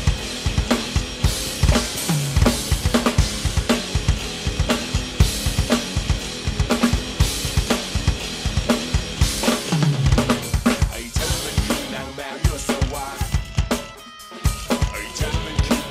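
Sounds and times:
electronic drum kit beat: 0.0 - 15.9.

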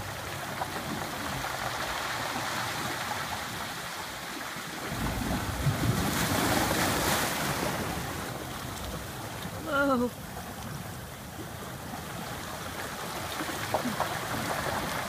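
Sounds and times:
ocean surf churning in sea cave: 0.0 - 15.0.

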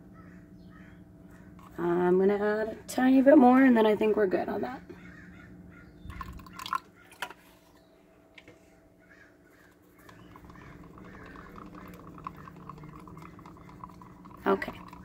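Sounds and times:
water pouring into a cup: 6.1 - 7.3, 10.0 - 15.0
stick stirring paint in a cup: 10.0 - 15.0.

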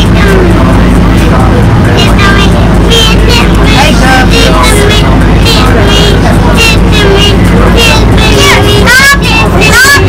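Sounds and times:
bus engine hum: 0.0 - 10.0
road noise: 0.0 - 10.0.

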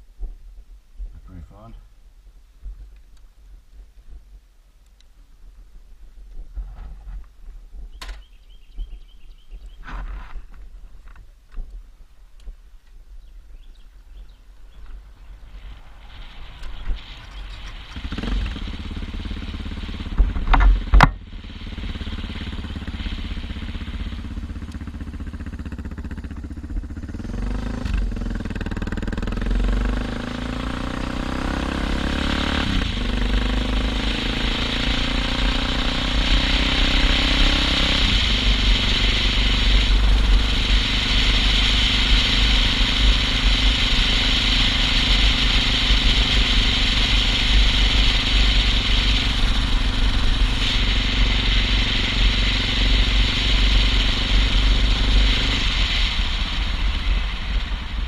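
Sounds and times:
motorcycle engine accelerating: 14.2 - 58.0.

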